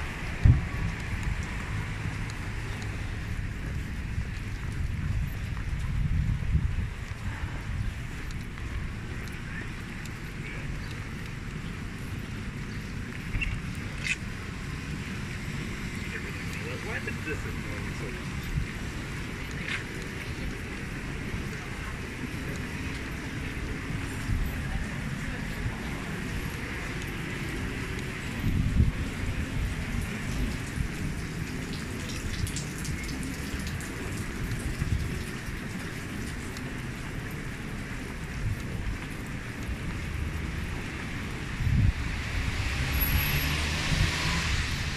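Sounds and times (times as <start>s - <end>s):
wind on microphone: 0.0s - 9.2s, 18.2s - 36.0s, 37.6s - 44.9s
rain on street: 0.0s - 44.9s
traffic rumble: 0.0s - 44.9s.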